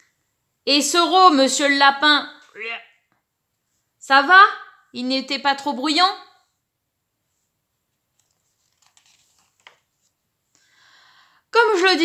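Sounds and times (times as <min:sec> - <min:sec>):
paper page turning: 0:08.1 - 0:10.2.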